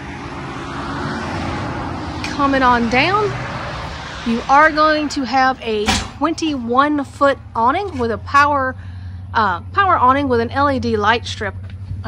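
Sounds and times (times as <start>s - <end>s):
road noise: 0.0s - 12.0s
vehicle engine hum: 0.0s - 12.0s.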